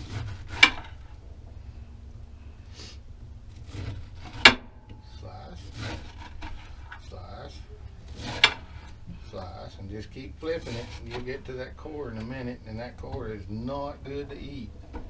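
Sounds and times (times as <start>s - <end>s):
knife slicing through pineapple: 5.5s - 6.8s.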